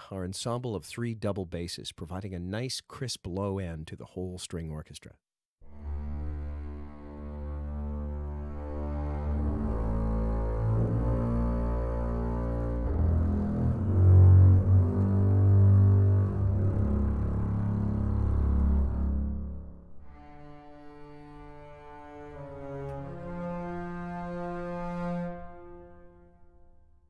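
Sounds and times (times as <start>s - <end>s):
double basses playing legato: 5.7s - 25.6s.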